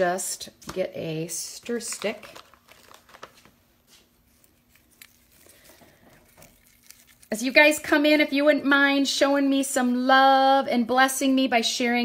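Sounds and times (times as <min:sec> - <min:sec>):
faint handling of craft supplies: 0:00.4 - 0:08.3.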